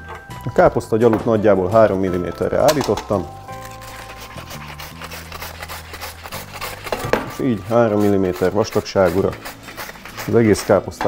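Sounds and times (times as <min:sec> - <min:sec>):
cabbage rasping on mandoline slicer: 0:03.5 - 0:11.0.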